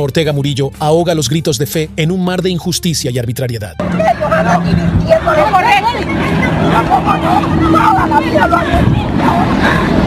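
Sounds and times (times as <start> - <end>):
hubbub of voices: 3.8 - 10.0.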